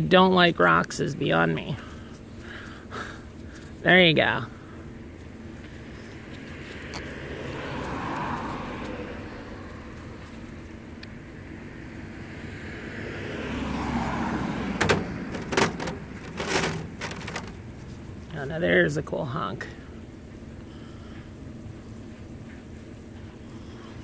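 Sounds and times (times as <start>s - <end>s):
road traffic passing: 0.0s - 24.0s
sharp knocks and clatters: 14.8s - 17.6s.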